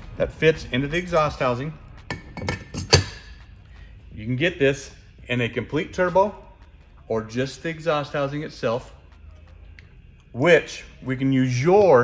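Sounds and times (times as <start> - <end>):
metal ring clinking and knocking: 2.0 - 3.4.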